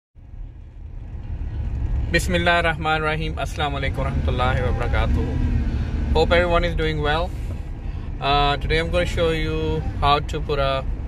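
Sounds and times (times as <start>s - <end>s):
van engine rumble: 0.2s - 11.0s.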